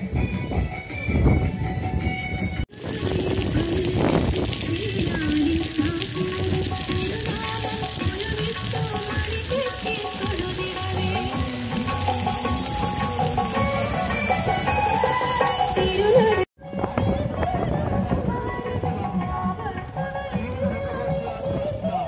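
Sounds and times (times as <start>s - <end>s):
fountain water splashing: 0.0s - 16.5s
wavering melody music: 0.0s - 19.1s.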